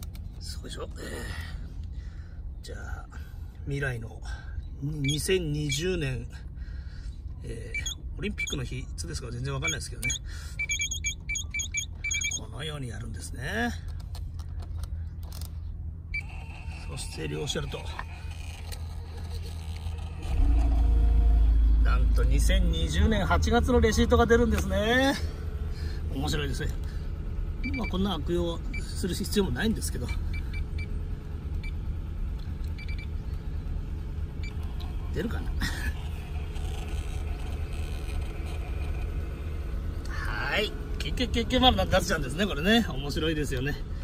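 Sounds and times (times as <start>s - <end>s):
low steady rumble: 0.0s - 44.0s
high-pitched keypad beeps: 7.8s - 8.6s, 9.6s - 12.4s.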